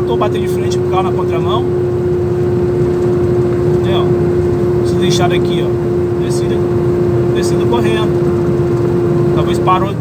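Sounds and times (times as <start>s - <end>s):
constant hum: 0.0s - 10.0s
truck engine rumbling: 0.0s - 10.0s.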